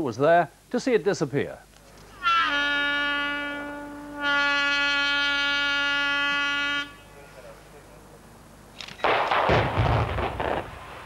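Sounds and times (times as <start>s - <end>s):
warning horn blasts: 2.1s - 7.6s.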